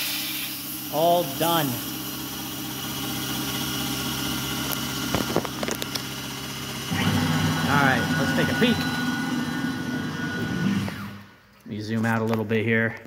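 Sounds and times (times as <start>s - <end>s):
milling machine humming: 0.0s - 11.4s
motor whine rising: 0.4s - 11.5s.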